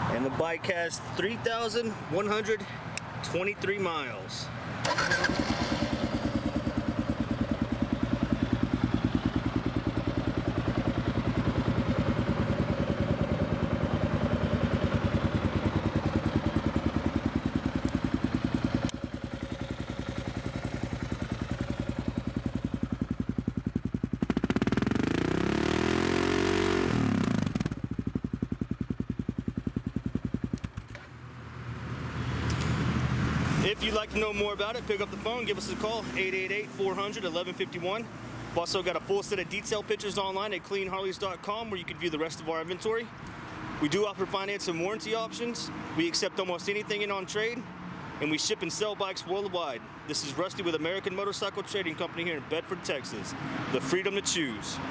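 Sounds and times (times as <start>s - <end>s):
motorcycle engine idling: 4.8s - 31.0s.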